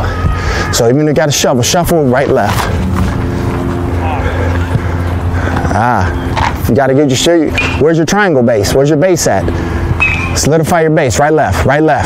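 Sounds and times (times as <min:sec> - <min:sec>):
motor droning: 0:01.6 - 0:10.5.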